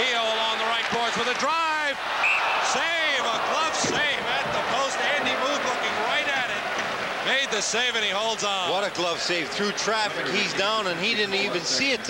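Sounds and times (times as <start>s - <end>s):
commentator speaking: 2.7s - 6.6s, 7.2s - 12.0s.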